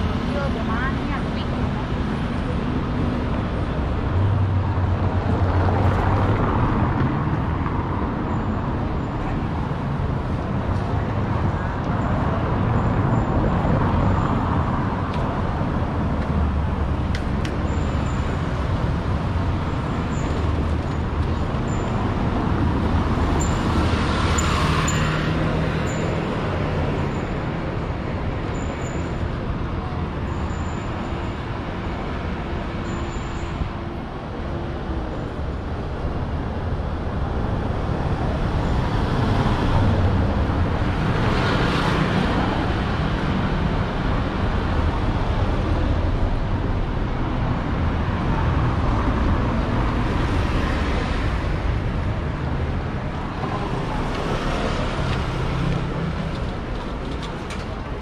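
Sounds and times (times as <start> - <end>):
street traffic: 0.0 - 58.0.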